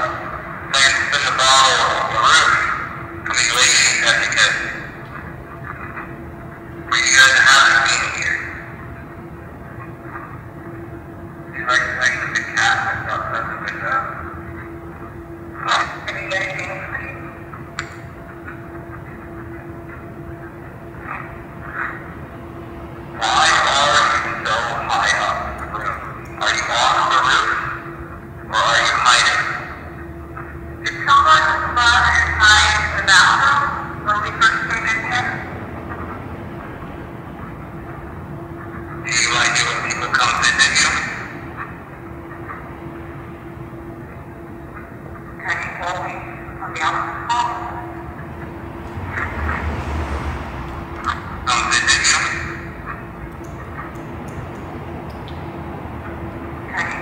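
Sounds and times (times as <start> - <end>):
people talking: 0.0 - 6.0, 6.9 - 8.6, 11.5 - 14.4, 15.6 - 17.9, 23.2 - 30.0, 30.8 - 35.6, 39.0 - 41.6, 45.3 - 48.0, 51.0 - 53.0, 56.7 - 57.0
steady low hum: 0.0 - 57.0.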